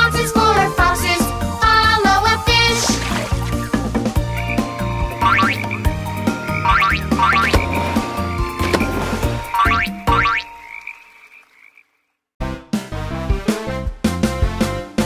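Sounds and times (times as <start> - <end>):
upbeat children's music: 0.0 - 10.4, 12.4 - 15.0
cartoon frog croaks: 9.6 - 12.1.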